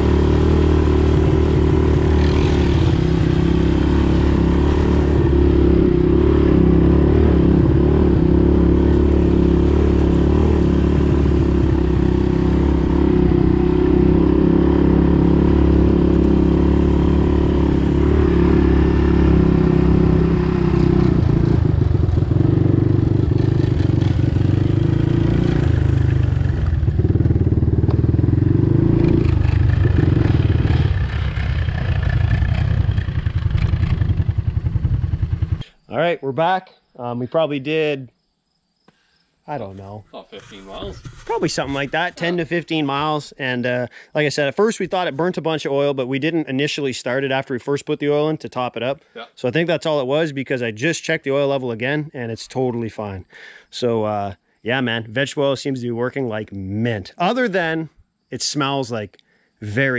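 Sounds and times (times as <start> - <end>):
three-wheeler engine running: 0.0 - 35.6.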